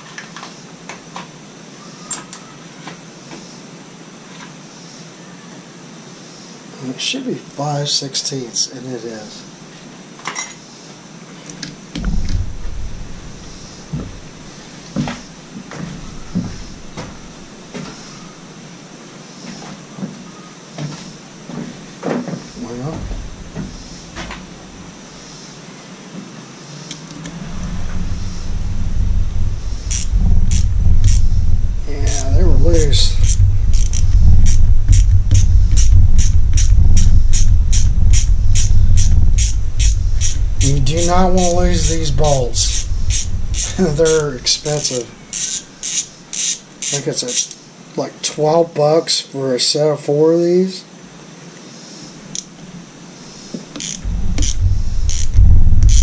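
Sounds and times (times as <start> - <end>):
loud low rumble: 12.0 - 18.4, 22.6 - 25.0, 27.2 - 45.3, 54.0 - 56.0
ratchet clicking: 29.8 - 31.3, 33.0 - 47.6, 53.8 - 56.0.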